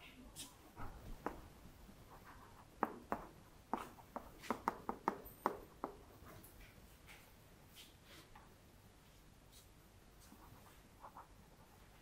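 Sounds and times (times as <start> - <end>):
chalk taps: 1.2 - 1.5, 2.1 - 6.3.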